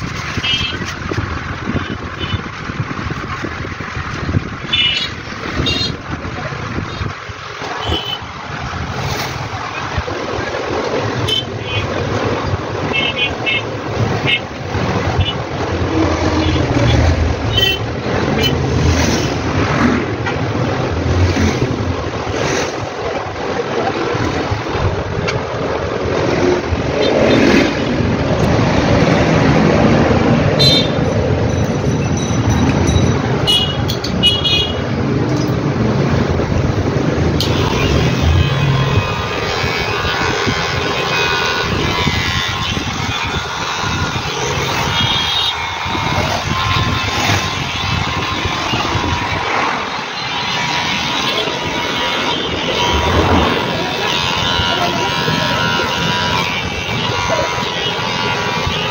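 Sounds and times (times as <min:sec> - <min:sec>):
street traffic noise: 0:00.0 - 0:58.9
vehicle horns: 0:00.1 - 0:02.8, 0:04.6 - 0:08.4, 0:10.8 - 0:23.5, 0:26.0 - 0:58.9.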